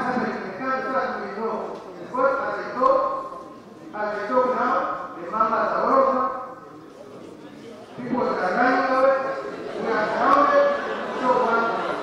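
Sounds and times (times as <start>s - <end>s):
man speaking into microphone: 0.0s - 12.0s.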